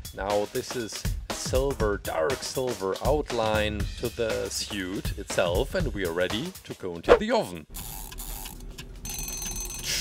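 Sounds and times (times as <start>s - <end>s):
kitchen timer bell ring: 9.0s - 10.0s.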